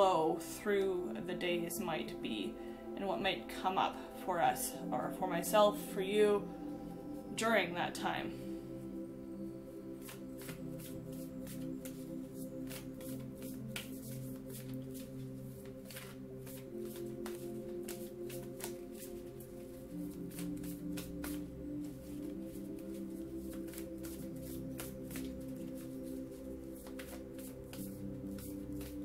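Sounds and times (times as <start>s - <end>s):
soft background music: 0.0s - 29.0s
cards being shuffled: 10.0s - 29.0s.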